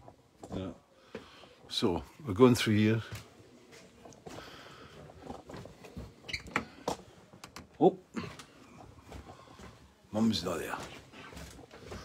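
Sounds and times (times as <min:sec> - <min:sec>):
soft handling knocks and clicks: 0:03.0 - 0:09.9.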